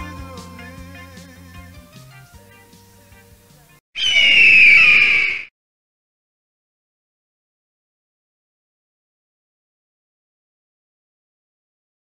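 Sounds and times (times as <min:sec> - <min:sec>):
eagle screech: 0:04.0 - 0:05.5.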